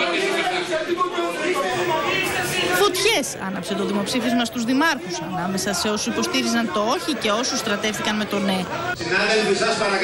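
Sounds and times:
men arguing: 0:00.3 - 0:10.0.

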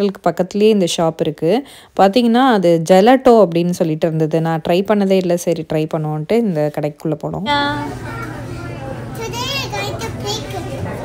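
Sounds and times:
children chattering and calling out: 0:07.5 - 0:11.0.

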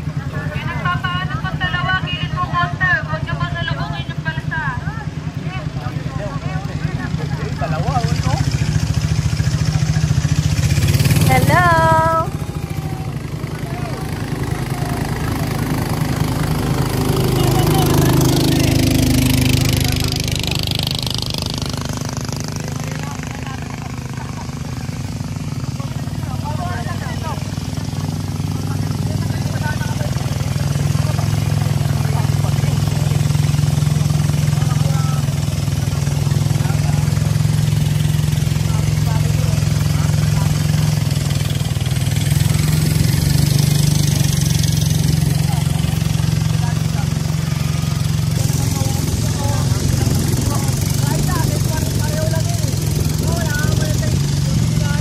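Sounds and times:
motorboat engine running: 0:00.0 - 0:55.0
motorboat passing by: 0:00.0 - 0:55.0.

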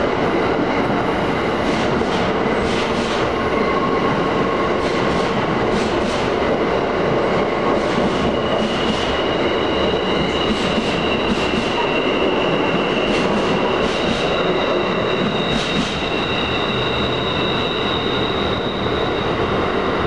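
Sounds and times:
train rumbling past: 0:00.0 - 0:20.0
high-pitched wheel squeal: 0:08.4 - 0:20.0.

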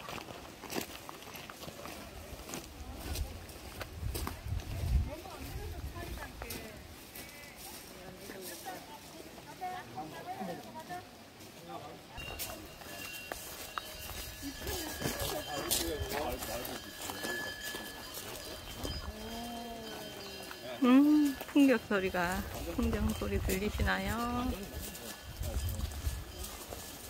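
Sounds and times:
people chatting: 0:04.6 - 0:13.1, 0:14.4 - 0:26.9
wind bell ringing: 0:12.2 - 0:27.0.

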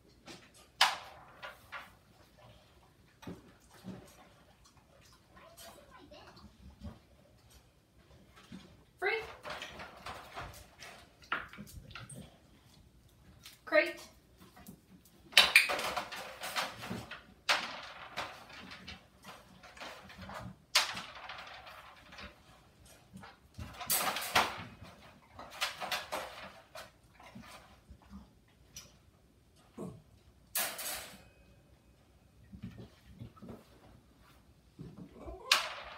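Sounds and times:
wire dog crate rattling: 0:08.4 - 0:12.4, 0:15.2 - 0:27.8, 0:35.2 - 0:35.9.

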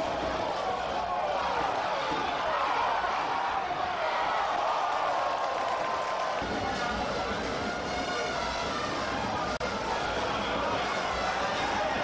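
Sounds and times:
stadium crowd voices: 0:00.0 - 0:12.0.

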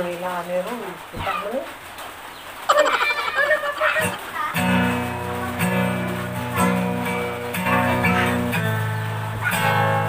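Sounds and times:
woman laughing: 0:02.7 - 0:04.6.

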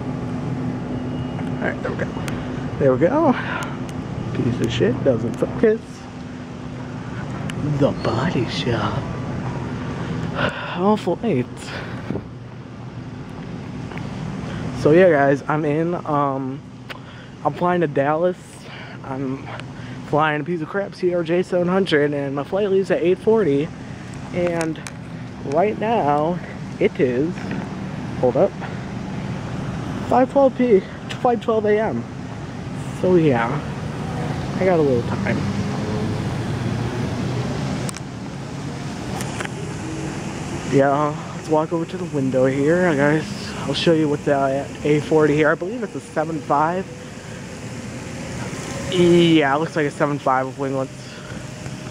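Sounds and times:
airport hall background noise: 0:00.0 - 0:51.9.

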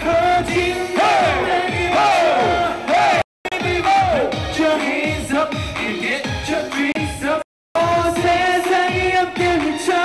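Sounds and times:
pop dance music with male vocals: 0:00.0 - 0:10.0.

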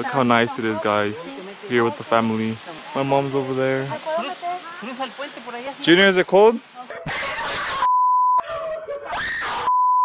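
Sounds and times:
censor bleeps: 0:07.8 - 0:08.4, 0:09.6 - 0:10.0.

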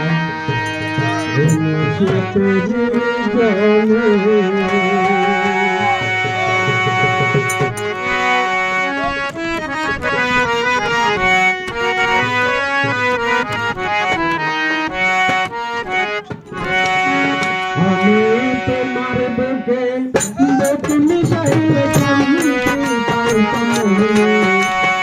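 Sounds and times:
person singing: 0:00.0 - 0:06.8, 0:16.9 - 0:25.0
harmonium melody: 0:00.0 - 0:25.0.

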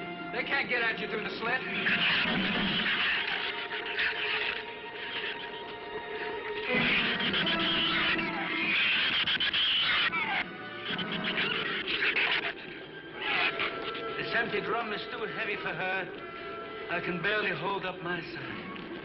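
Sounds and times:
film score music: 0:00.0 - 0:19.0.

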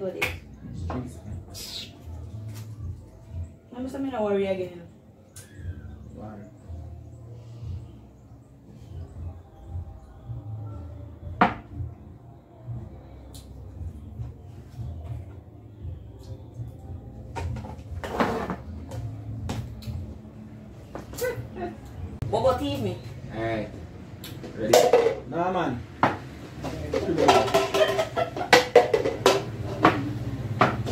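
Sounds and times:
objects knocking on wooden table: 0:11.4 - 0:11.7, 0:26.0 - 0:30.9
objects clattering: 0:26.5 - 0:30.9.

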